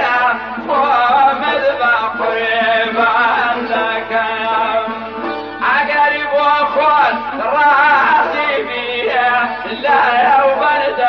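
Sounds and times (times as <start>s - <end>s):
man singing folk song: 0.0s - 11.0s.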